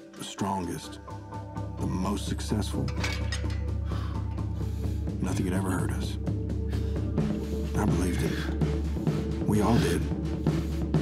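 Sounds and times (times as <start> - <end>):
low music drone: 0.0 - 11.0
barbell metallic clicks and rattles: 2.9 - 3.8.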